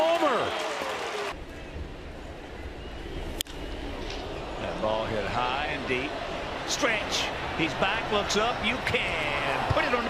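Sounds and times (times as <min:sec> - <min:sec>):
crowd hum with low rumble: 0:01.4 - 0:10.0.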